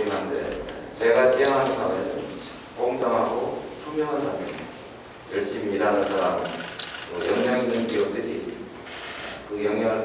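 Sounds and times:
man speaking into a microphone: 0:00.0 - 0:04.7, 0:05.3 - 0:08.7.

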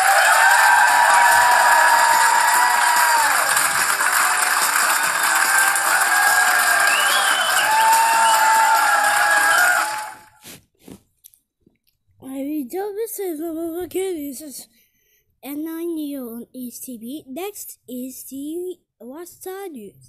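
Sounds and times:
audience applauding: 0:00.0 - 0:10.4.

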